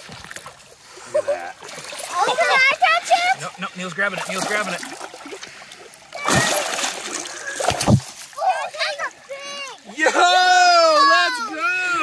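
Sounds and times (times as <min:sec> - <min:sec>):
heavy splashes: 0:01.6 - 0:08.8
fish thrashing in water: 0:04.2 - 0:08.4
excited voices calling out: 0:08.4 - 0:12.0.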